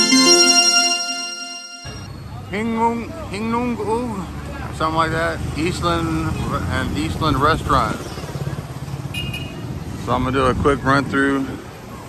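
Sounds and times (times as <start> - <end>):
high-pitched horn toot: 0.0 - 2.1
low rumble of traffic: 2.9 - 12.0.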